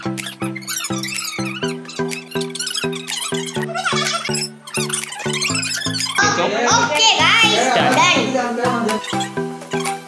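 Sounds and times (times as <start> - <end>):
background music with repeating beat: 0.0 - 10.0
lively voices: 6.2 - 9.2.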